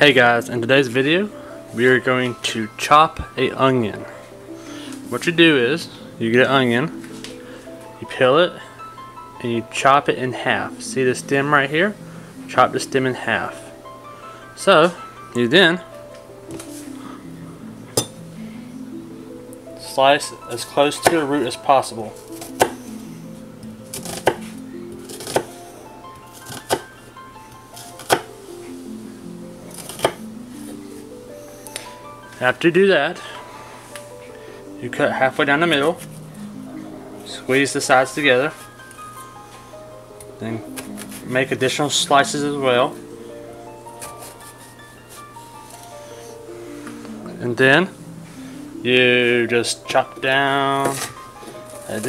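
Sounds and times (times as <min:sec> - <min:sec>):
background music: 0:00.0 - 0:52.0.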